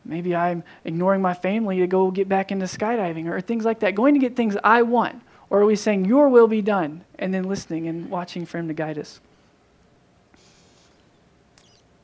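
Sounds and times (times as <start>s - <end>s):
faint high squeak: 10.4s - 12.0s.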